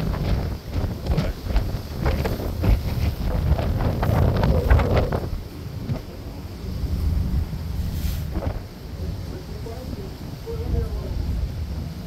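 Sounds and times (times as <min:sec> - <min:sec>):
choppy water wash: 0:00.0 - 0:12.0
wind buffeting microphone: 0:00.0 - 0:12.0.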